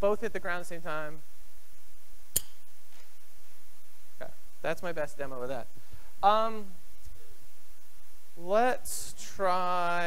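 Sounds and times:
sharp click of spring apparatus: 2.3s - 2.6s.

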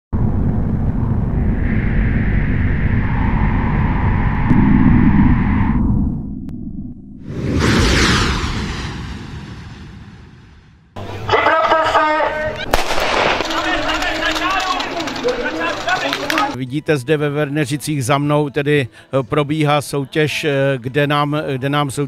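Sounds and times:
low rumbling drone: 0.1s - 11.1s
whooshing hit: 0.2s - 11.0s.

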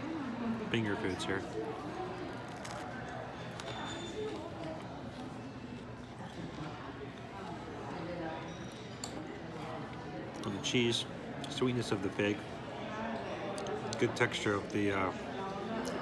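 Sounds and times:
murmur of diners' voices: 0.0s - 16.0s
man chewing toasted bread: 1.4s - 7.3s.

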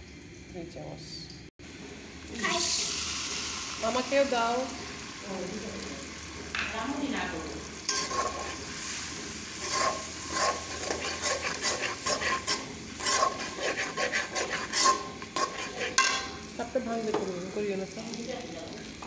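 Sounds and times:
onions sizzling in oil: 1.6s - 19.0s
metal spatula scraping pan: 7.8s - 16.5s.

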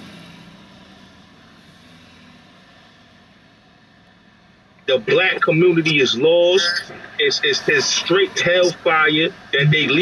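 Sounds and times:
car idling hum: 3.6s - 10.0s.

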